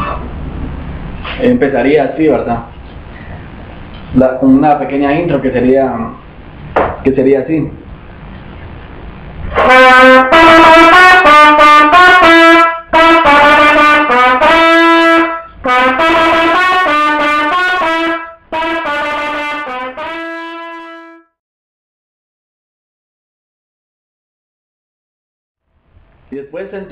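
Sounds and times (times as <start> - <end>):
solo trumpet melody: 9.5 - 21.4.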